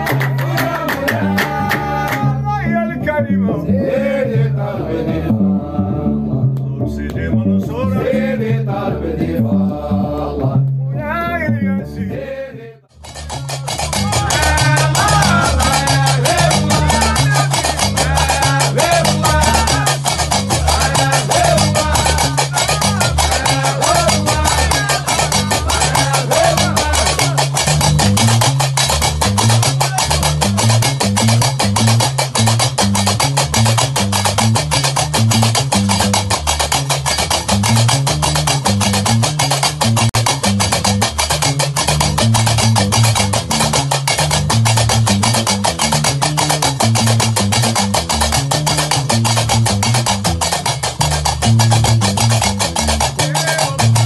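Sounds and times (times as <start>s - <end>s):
plucked bass line: 0.0s - 54.0s
chanted vocal: 0.1s - 2.4s, 3.6s - 7.0s, 7.8s - 10.7s, 12.0s - 12.9s, 14.3s - 20.0s, 20.6s - 27.4s
man singing: 0.4s - 12.8s, 14.0s - 27.6s, 53.2s - 54.0s.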